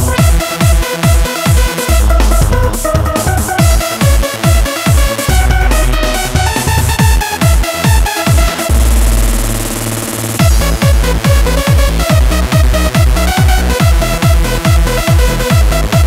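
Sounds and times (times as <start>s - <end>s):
kick drum: 0.0s - 9.7s, 10.4s - 16.0s
deep bass: 0.0s - 16.0s
synth melody: 0.0s - 16.0s.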